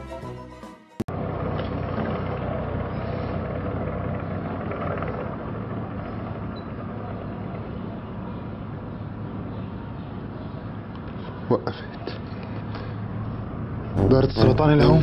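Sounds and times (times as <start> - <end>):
tracked vehicle engine hum: 1.1 - 15.0.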